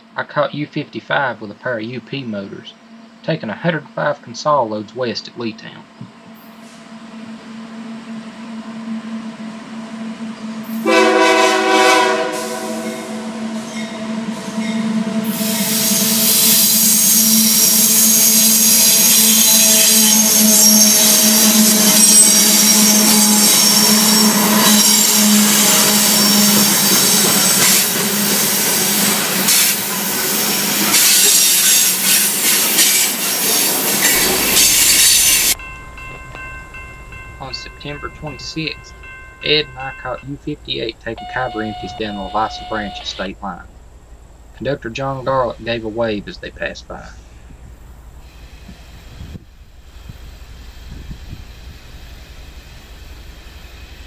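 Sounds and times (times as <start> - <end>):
diesel locomotives droning: 0.0 - 54.0
train wheels rolling: 2.8 - 54.0
train horn: 6.6 - 32.3, 41.1 - 43.2
train wheel squeal: 13.6 - 36.4, 41.2 - 43.2.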